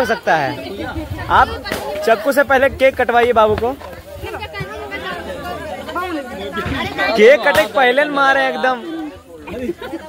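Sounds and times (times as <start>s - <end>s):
crowd talking over one another: 0.0s - 10.0s.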